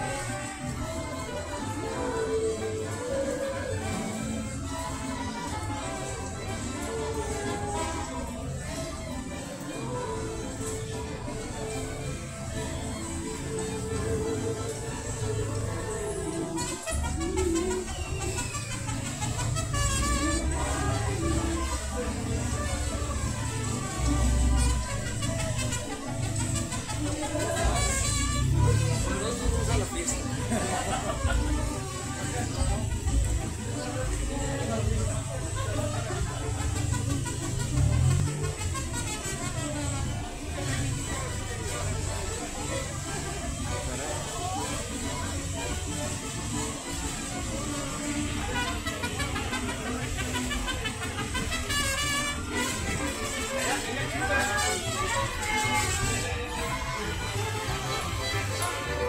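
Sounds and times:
music playing: 0.0 - 59.0.

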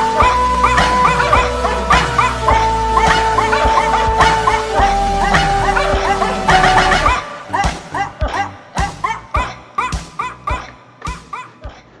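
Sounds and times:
pitch-shifted dog barks melody: 0.0 - 7.4
steady drum beat: 0.0 - 11.4.

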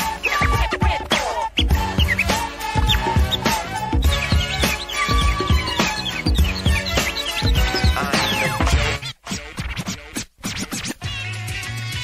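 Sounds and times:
hip hop drum beat: 0.0 - 9.0
turntable scratching: 0.0 - 12.0.

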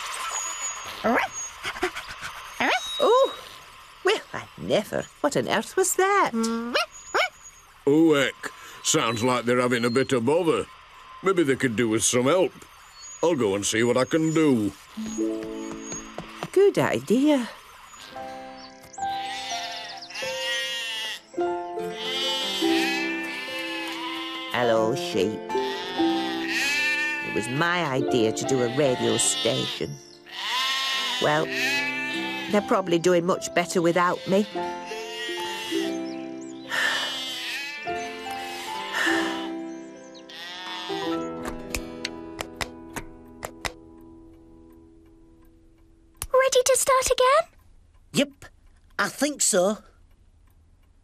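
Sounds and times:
background music with held notes: 14.3 - 16.9, 17.9 - 46.2
sheep bleating: 19.1 - 32.8, 33.8 - 36.0, 36.7 - 39.7, 40.3 - 41.3
light ticks: 41.4 - 51.0.

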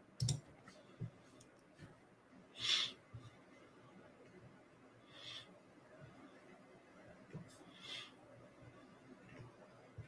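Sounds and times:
faint short breaths: 7.6 - 8.2.

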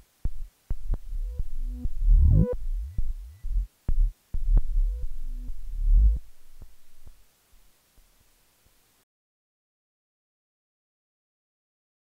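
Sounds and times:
synthesizer bass notes: 0.8 - 6.2.

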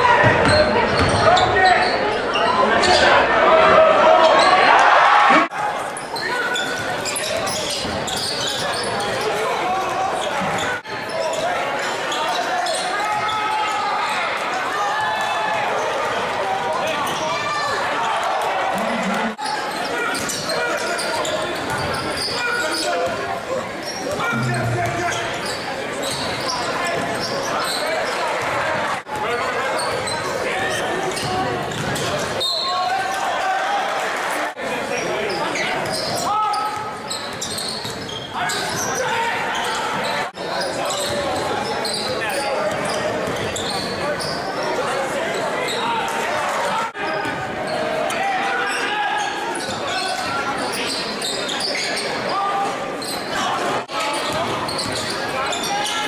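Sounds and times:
crowd chatter echoing: 0.0 - 56.0.

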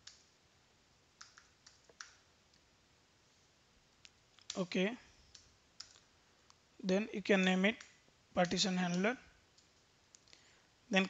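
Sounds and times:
person speaking: 4.4 - 5.2, 6.8 - 9.4.

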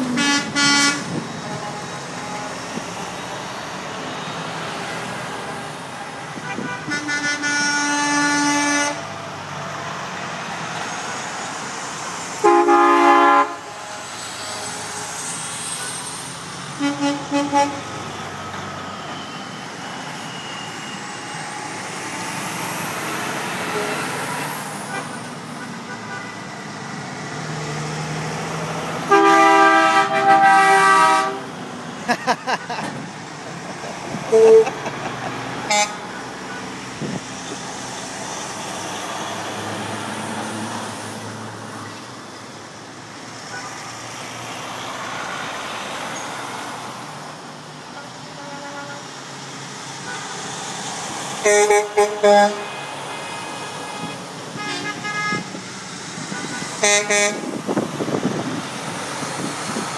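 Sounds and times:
truck air horn: 0.0 - 2.8, 6.3 - 9.1, 12.4 - 17.9, 23.5 - 26.5, 29.0 - 31.6, 34.3 - 34.9, 35.6 - 36.8, 47.9 - 49.2, 50.0 - 50.6, 51.4 - 55.6, 56.3 - 57.6
diesel trucks passing: 0.0 - 59.9.

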